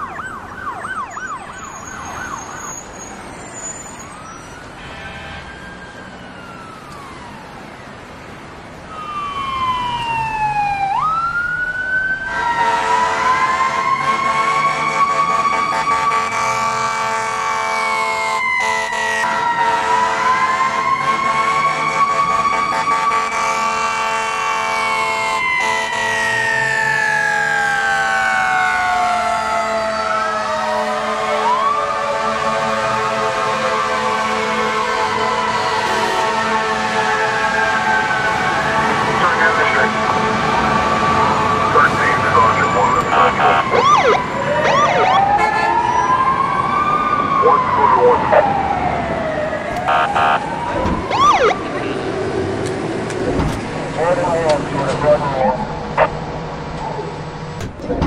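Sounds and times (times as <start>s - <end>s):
yelping siren: 0.0s - 8.0s, 8.9s - 52.6s
wailing siren: 0.0s - 57.2s.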